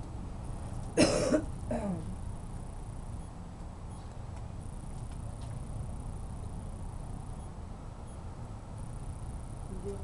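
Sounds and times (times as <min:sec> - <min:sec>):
person coughing: 0:01.0 - 0:02.0
throat clearing: 0:01.0 - 0:02.0.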